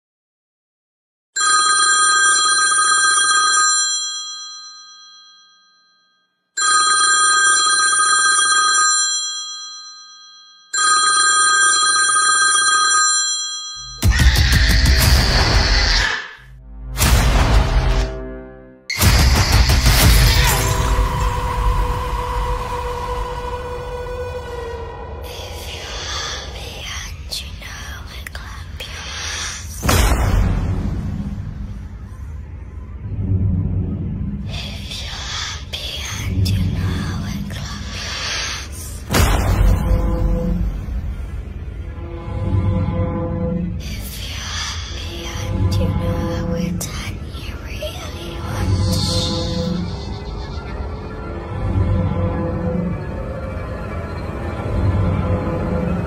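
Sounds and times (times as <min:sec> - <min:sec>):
telephone bell ringing: 0:01.4 - 0:14.0
loud noisy blast: 0:14.0 - 0:24.8, 0:29.8 - 0:31.9
person whispering: 0:25.2 - 0:29.8, 0:34.4 - 0:39.1, 0:43.8 - 0:50.2.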